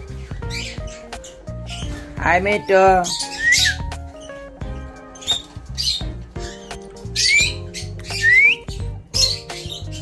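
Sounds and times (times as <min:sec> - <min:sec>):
background music: 0:00.0 - 0:10.0
parakeet squawking: 0:00.0 - 0:10.0.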